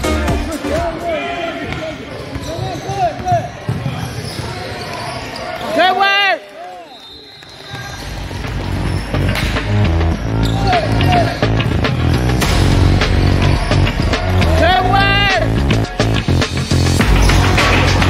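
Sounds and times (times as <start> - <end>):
music with heavy beat: 0.0 - 1.0, 8.4 - 18.0
sneakers squeaking on wooden floor: 1.6 - 5.9, 6.9 - 12.4
basketball bouncing: 1.7 - 4.5.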